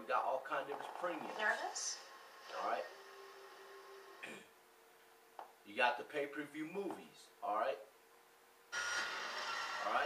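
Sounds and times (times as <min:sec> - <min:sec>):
steady hiss with faint tones: 0:00.0 - 0:10.0
man speaking: 0:02.5 - 0:03.0, 0:05.7 - 0:07.9.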